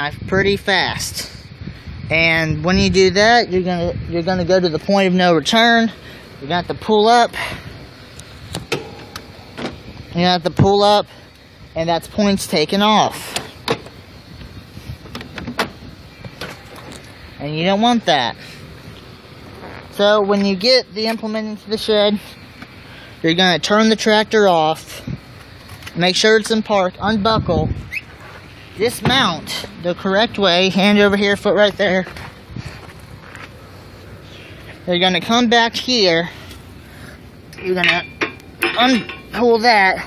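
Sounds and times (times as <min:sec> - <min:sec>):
tractor engine at low revs: 0:00.0 - 0:40.0.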